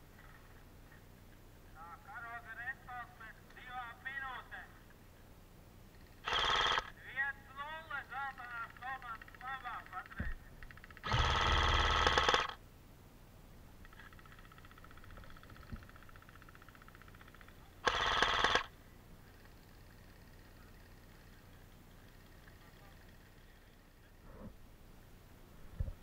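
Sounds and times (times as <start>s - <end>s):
airsoft rifle full-auto bursts: 6.0s - 7.0s, 10.7s - 12.6s, 13.9s - 18.7s.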